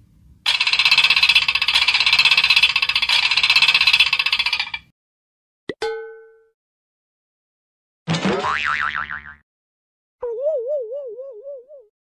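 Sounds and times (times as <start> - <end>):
cartoon boing: 8.2 - 9.4.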